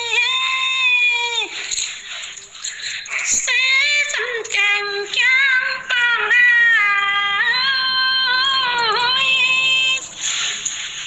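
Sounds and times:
person singing unaccompanied: 0.0 - 10.2
breathy hiss: 1.4 - 4.6, 10.0 - 11.0.

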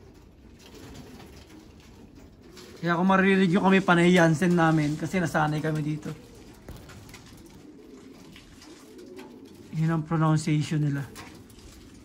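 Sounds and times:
pigeons cooing: 0.0 - 12.0
man talking: 2.8 - 6.2, 9.7 - 11.2.

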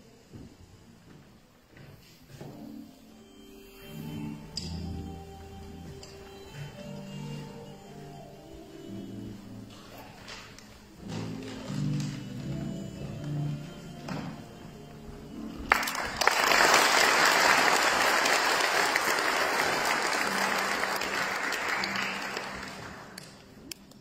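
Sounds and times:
quiet music: 0.0 - 24.0
audience applause: 15.7 - 23.5.

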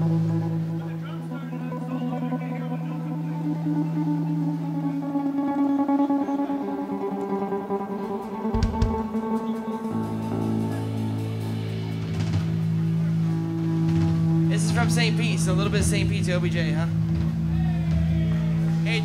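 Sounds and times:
amplified guitars and bass sustained notes: 0.0 - 19.0.

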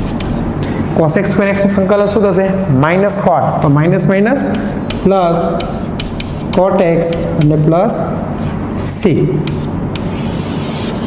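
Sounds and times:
chalk tapping on board: 0.0 - 0.4, 4.4 - 7.7, 9.4 - 11.0
chalk scratching on chalkboard: 0.0 - 0.5, 4.4 - 7.7, 8.4 - 11.0.

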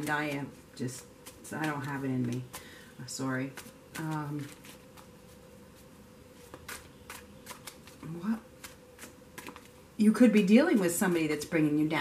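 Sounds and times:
cards being shuffled: 3.5 - 9.8.

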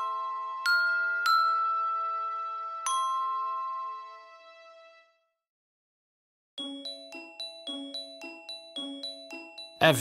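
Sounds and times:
tinkling bell-toned melody: 0.0 - 4.6, 6.6 - 10.0.

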